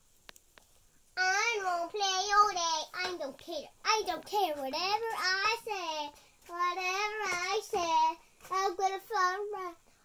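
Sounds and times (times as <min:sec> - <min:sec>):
child singing: 0:01.2 - 0:09.9.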